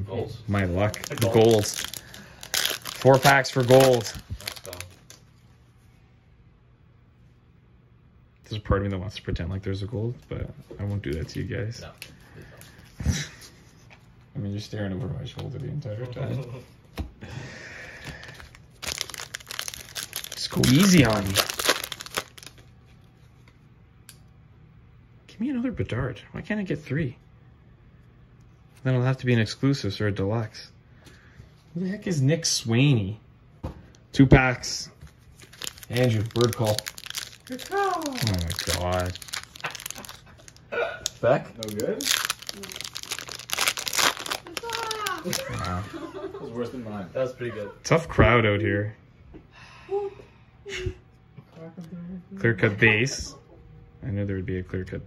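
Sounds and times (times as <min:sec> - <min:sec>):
foil wrapper crinkling: 0:00.5 - 0:05.3, 0:18.2 - 0:22.7, 0:35.2 - 0:45.9.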